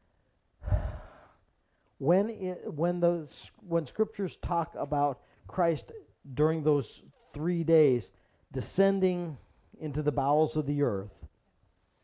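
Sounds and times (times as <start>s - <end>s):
man sighing: 0.6s - 1.4s.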